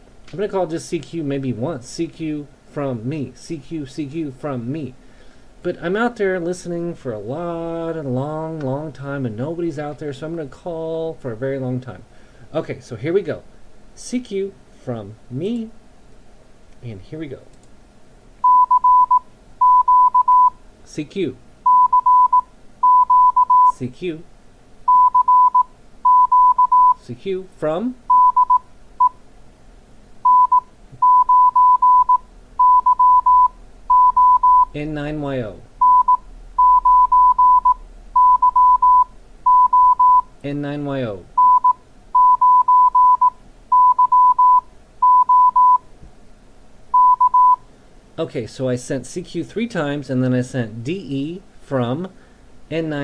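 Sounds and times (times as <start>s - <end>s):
morse code tone: 18.4s - 20.6s, 21.7s - 23.8s, 24.9s - 27.0s, 28.1s - 29.2s, 30.2s - 34.8s, 35.8s - 40.3s, 41.4s - 45.8s, 47.0s - 47.6s.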